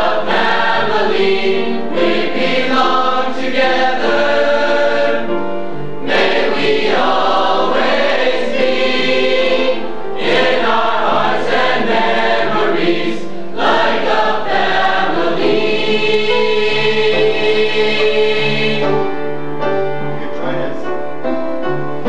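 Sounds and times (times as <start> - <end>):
choir singing in harmony: 0.0 - 19.7.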